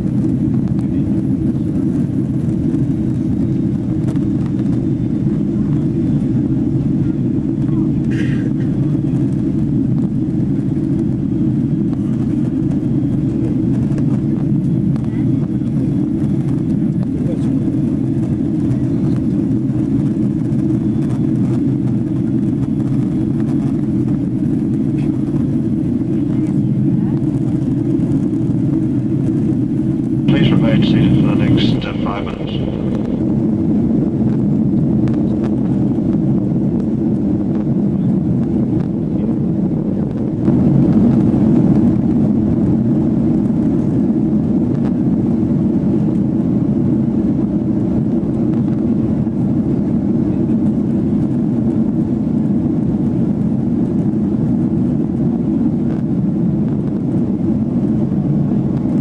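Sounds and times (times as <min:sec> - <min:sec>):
airplane cabin engine roar: 0:00.0 - 0:59.0.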